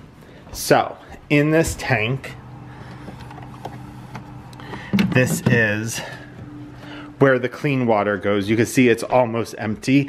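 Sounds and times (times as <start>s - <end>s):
mop base station humming: 0.0s - 10.0s.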